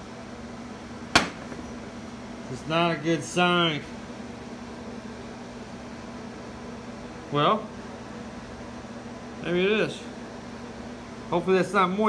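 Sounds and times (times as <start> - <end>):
room hum: 0.0 - 12.0
sharp knock: 1.2 - 1.6.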